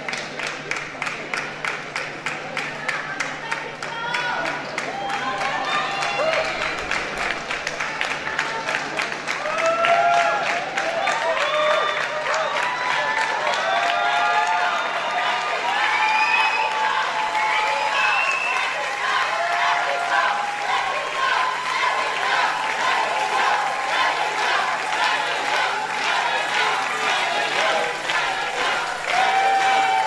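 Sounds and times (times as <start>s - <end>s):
audience applauding: 0.0s - 30.0s
crowd calling out and cheering: 0.0s - 30.0s.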